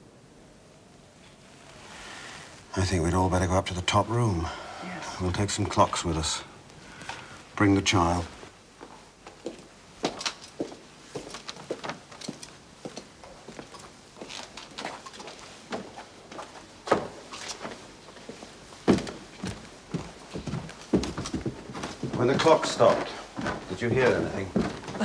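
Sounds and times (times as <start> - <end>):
footsteps on a staircase: 8.8 - 25.0.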